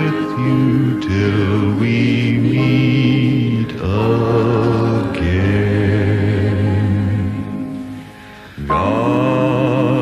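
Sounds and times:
choir singing a hymn: 0.0s - 7.9s, 8.6s - 10.0s.

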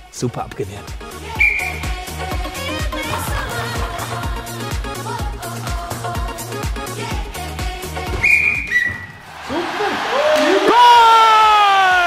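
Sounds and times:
background music: 0.0s - 12.0s
long loud shout: 9.4s - 12.0s.

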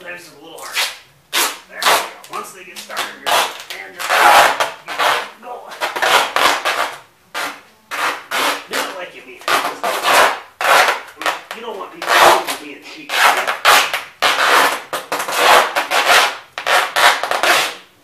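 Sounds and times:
duct tape ripping off roll: 0.6s - 17.9s.

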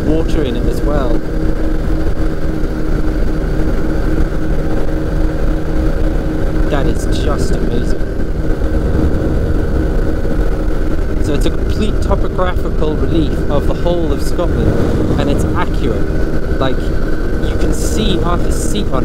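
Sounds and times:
microlight engine drone: 0.0s - 19.0s
wind rush on microphone: 0.0s - 19.0s
person speaking: 11.2s - 19.0s.

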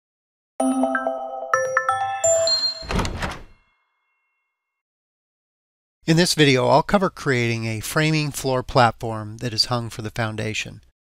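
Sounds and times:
bright chime-like tones: 0.6s - 4.8s.

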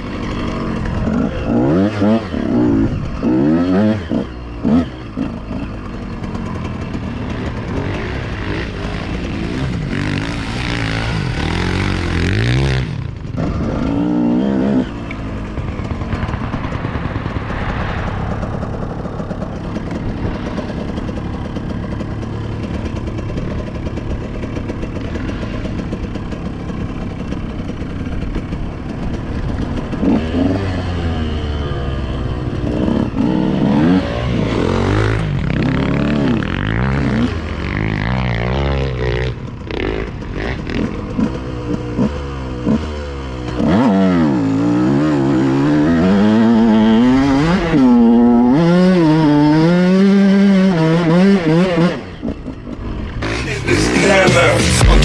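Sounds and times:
motocross engine revving: 0.0s - 55.0s.

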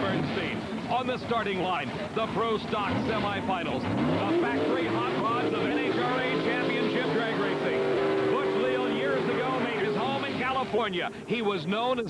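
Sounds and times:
drag car engine at high revs: 0.0s - 11.3s.

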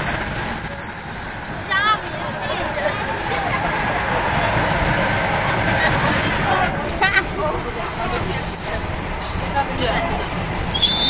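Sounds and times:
high whistling tone: 0.0s - 1.6s, 7.6s - 8.9s, 10.7s - 11.0s.

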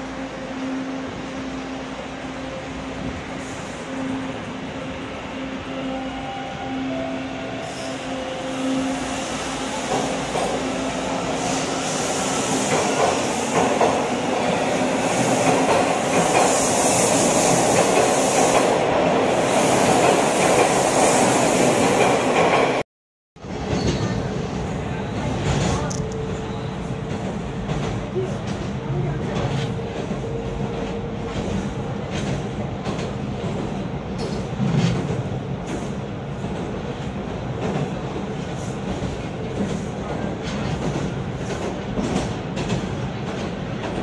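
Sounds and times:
subway train motor whine: 0.0s - 16.3s
train running noise: 0.0s - 22.8s, 23.4s - 44.0s.

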